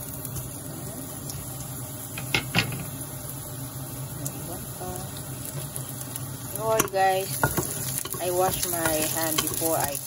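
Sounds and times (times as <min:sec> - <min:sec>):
onions sizzling in oil: 0:00.0 - 0:10.0.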